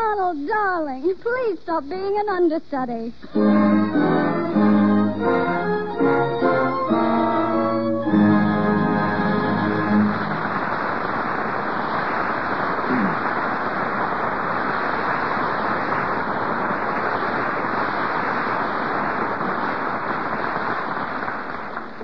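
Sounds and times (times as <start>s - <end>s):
studio audience applauding: 3.4s - 22.0s.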